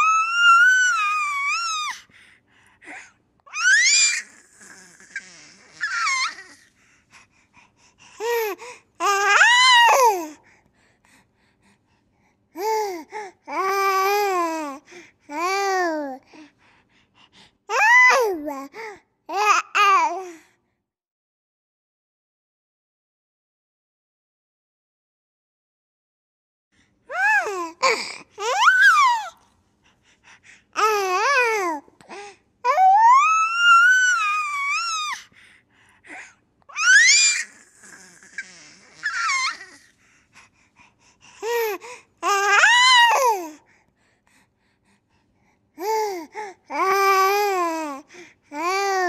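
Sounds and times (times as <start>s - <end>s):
baby squealing: 0.0s - 2.0s, 3.5s - 6.6s, 28.4s - 29.3s, 32.8s - 35.2s, 36.7s - 39.8s
baby breathing and gasping: 29.4s - 32.5s, 37.4s - 42.3s
baby vocalizing: 37.3s - 39.9s.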